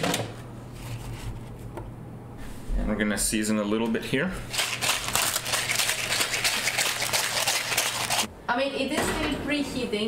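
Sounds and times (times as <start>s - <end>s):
paper rustling: 4.5s - 8.3s.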